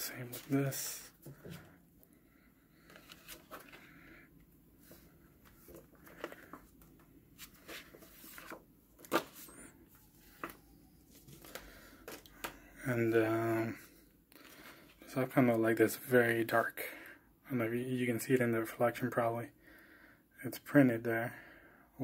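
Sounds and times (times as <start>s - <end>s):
paper and card rustling: 2.8s - 4.2s, 4.8s - 12.6s.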